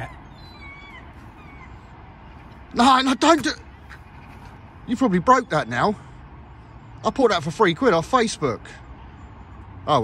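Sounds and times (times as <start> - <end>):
faint bird chirps: 0.0 - 7.0.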